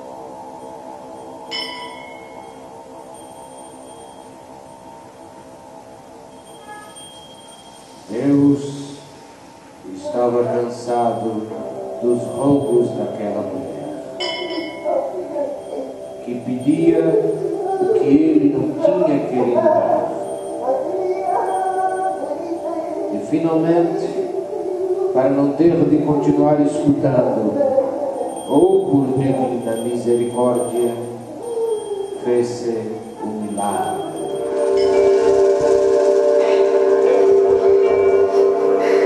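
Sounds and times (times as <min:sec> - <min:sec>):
sustained chord of steady tones: 0:00.0 - 0:39.0
person holding wailing note: 0:10.4 - 0:39.0.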